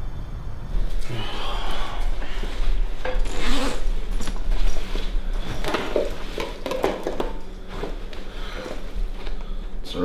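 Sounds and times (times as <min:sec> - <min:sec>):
bag rubbing and handling: 0:02.5 - 0:06.4
zipper on bag: 0:03.2 - 0:04.0.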